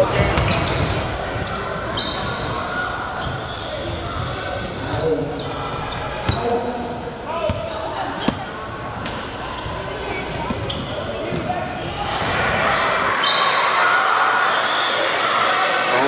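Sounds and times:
echoing murmur of voices: 0.0s - 16.0s.

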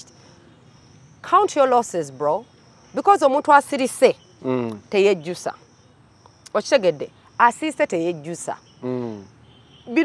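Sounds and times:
high insect trill: 0.0s - 10.0s
person talking: 4.4s - 4.8s, 8.8s - 9.2s.

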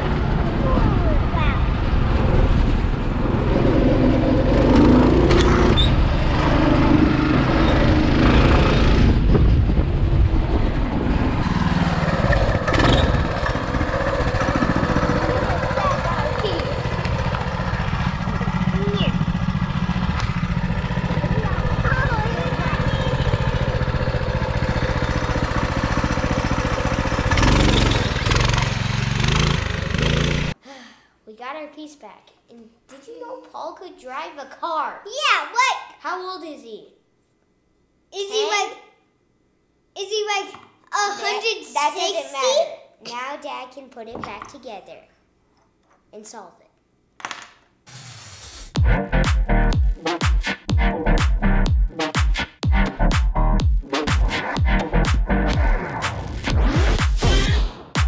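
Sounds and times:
go-kart engine running: 0.0s - 30.6s
children's voices: 0.4s - 1.8s, 15.1s - 17.0s, 18.7s - 19.2s, 21.1s - 23.6s, 31.9s - 36.9s, 38.2s - 38.9s, 40.0s - 43.5s
wind noise on microphone: 8.4s - 13.4s.

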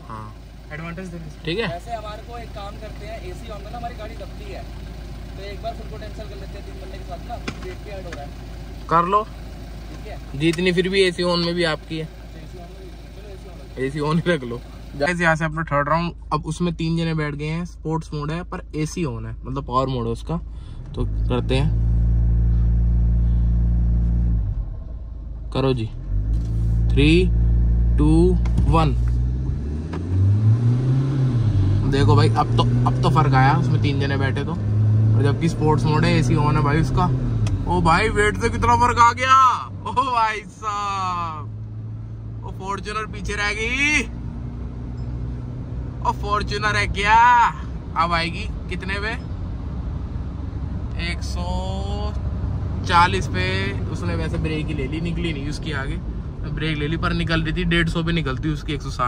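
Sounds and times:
car engine and road noise: 0.0s - 59.0s.

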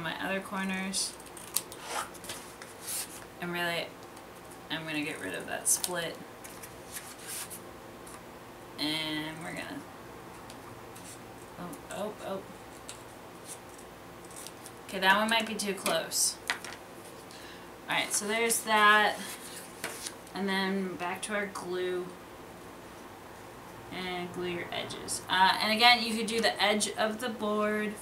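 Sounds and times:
paper and board rustling: 1.1s - 3.3s, 5.1s - 8.2s, 12.6s - 17.3s, 18.0s - 20.3s.

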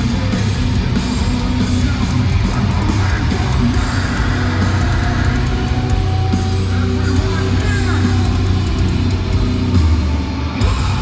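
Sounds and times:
live metalcore band playing: 0.0s - 11.0s.

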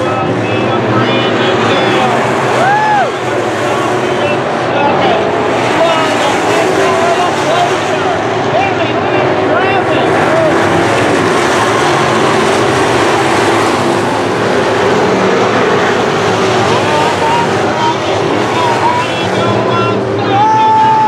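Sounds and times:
race car engines droning: 0.0s - 21.0s.

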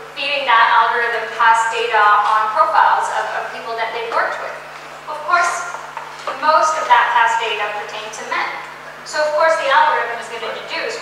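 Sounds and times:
woman speaking: 0.2s - 11.0s.

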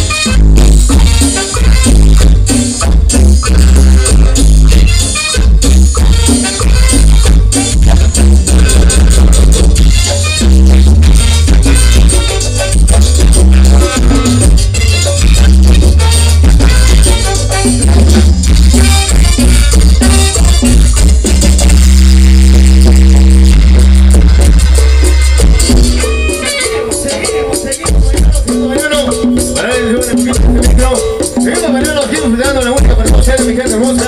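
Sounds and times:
live band playing latin dance music: 0.0s - 34.0s.

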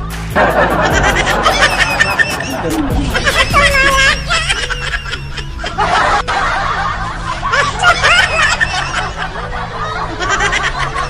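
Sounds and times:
background music: 0.0s - 11.0s
people laughing and snickering: 0.0s - 11.0s.

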